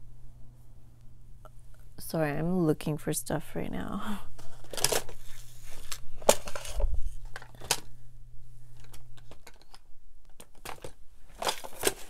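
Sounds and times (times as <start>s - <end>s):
objects clattering: 4.4s - 8.0s, 8.7s - 12.0s
small hard objects clicking and knocking: 8.8s - 12.0s.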